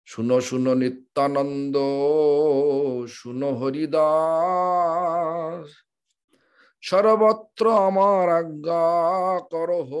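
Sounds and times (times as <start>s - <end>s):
man singing unaccompanied: 0.1s - 5.9s, 6.8s - 10.0s.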